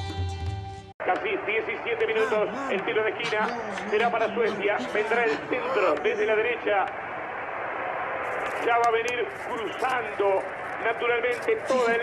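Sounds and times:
man commentating: 1.0s - 6.9s, 8.7s - 12.0s
background noise: 1.0s - 12.0s.

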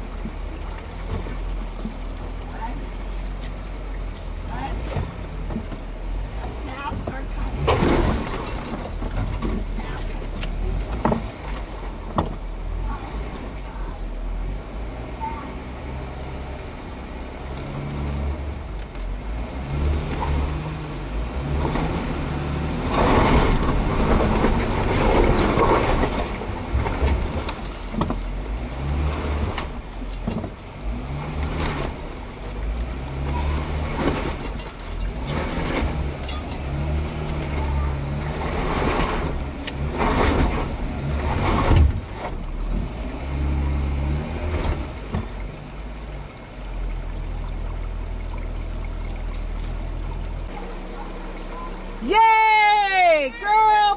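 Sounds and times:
engines revving: 0.0s - 52.2s
tyres churning through mud: 0.0s - 53.9s.

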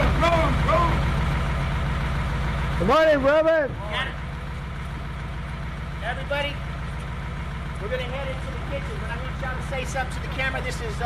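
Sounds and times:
bus engine idling: 0.0s - 11.0s.

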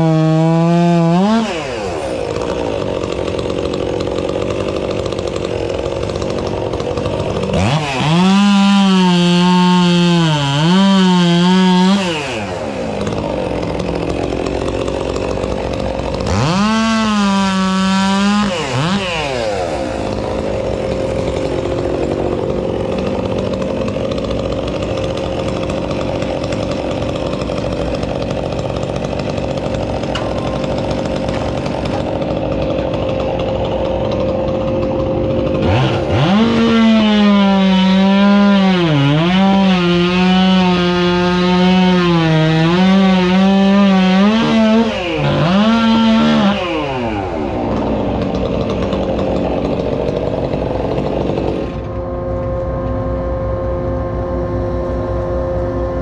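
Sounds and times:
chainsaw revving and cutting: 0.0s - 52.2s
engine drone: 42.1s - 56.0s.

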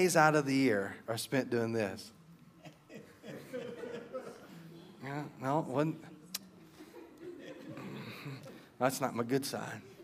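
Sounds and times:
soft chuckling and murmuring: 2.5s - 5.4s, 6.1s - 8.8s.

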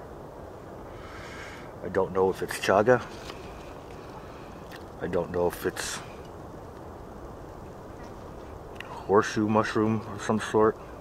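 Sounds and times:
outdoor low rumble and hiss: 0.0s - 11.0s.

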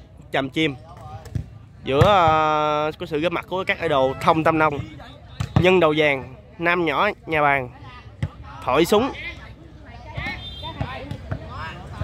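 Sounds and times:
volleyball struck thuds: 10.1s - 11.6s.

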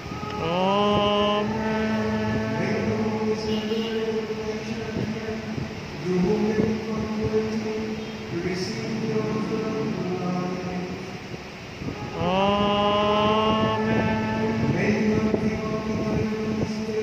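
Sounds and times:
liturgical chant: 0.0s - 17.0s
steady held tone: 0.0s - 17.0s.

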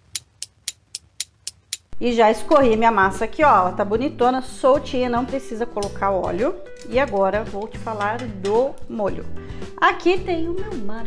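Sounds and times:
clock ticking: 0.0s - 2.0s.

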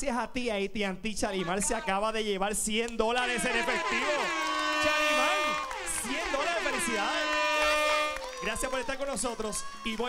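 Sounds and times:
horn-like chord sound effect: 3.2s - 8.2s
people shouting excitedly: 3.2s - 10.0s.

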